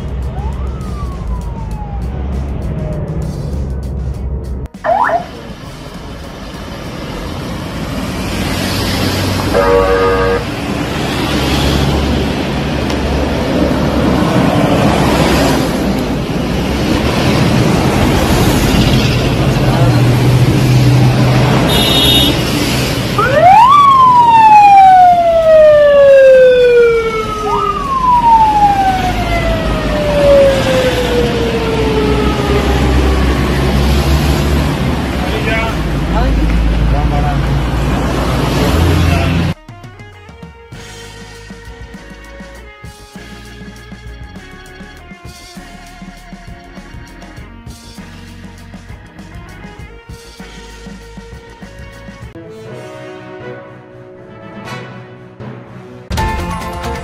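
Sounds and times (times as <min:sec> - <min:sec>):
car engine and road rumble: 0:00.0 - 0:45.0
traffic noise: 0:00.0 - 0:52.5
siren whoop: 0:00.3 - 0:02.3, 0:04.8 - 0:05.4, 0:23.2 - 0:33.8
siren wailing: 0:00.3 - 0:02.6, 0:04.8 - 0:05.5, 0:09.5 - 0:10.5, 0:23.2 - 0:33.9.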